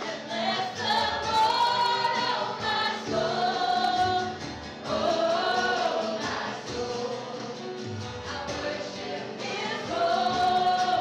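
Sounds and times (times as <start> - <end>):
acoustic guitar: 0.0 - 11.0
piano: 0.0 - 11.0
women singing slow melody: 0.0 - 11.0.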